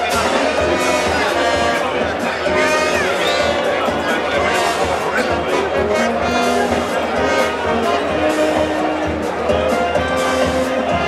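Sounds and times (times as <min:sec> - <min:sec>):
brass band music: 0:00.0 - 0:11.0
crowd voices and shouts: 0:00.0 - 0:11.0.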